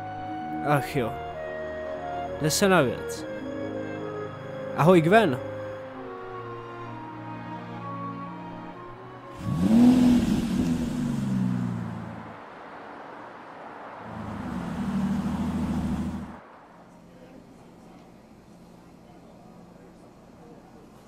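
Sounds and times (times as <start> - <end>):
music: 0.0 - 10.4
car passing by: 6.8 - 19.3.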